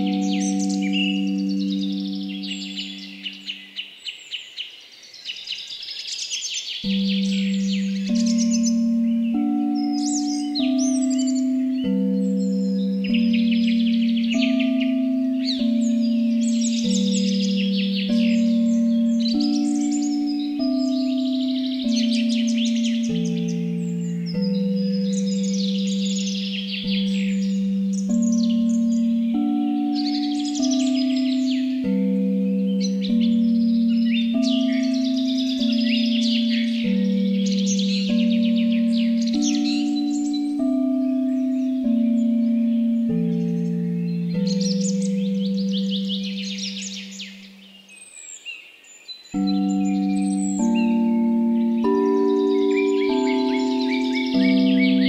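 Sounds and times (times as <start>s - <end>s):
singing bowls ringing: 0.0s - 3.8s, 6.8s - 48.0s, 49.3s - 55.0s
birds chirping: 0.0s - 55.0s.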